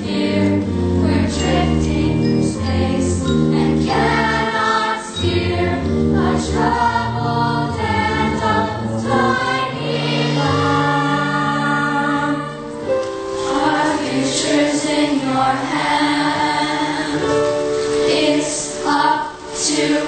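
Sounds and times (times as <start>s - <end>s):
chorus singing: 0.0s - 20.0s
instrumental accompaniment: 0.0s - 20.0s.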